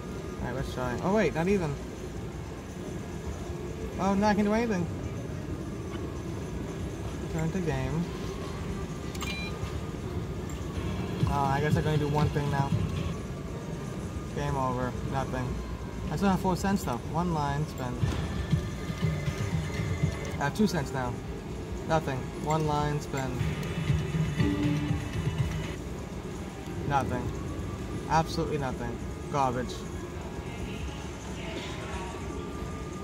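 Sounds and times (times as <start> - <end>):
low background hum: 0.0 - 33.0
electronic machine sounds: 3.3 - 13.4, 17.7 - 20.9, 22.1 - 25.8
slot machine reels spinning: 18.3 - 20.7
background chatter: 29.4 - 33.0.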